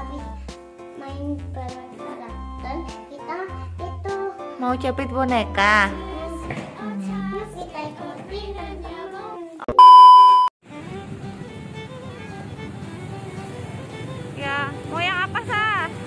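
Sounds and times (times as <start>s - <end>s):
light children's music: 0.0s - 9.6s, 10.7s - 16.0s
test-tone beep: 9.7s - 10.5s
street traffic: 10.6s - 16.0s.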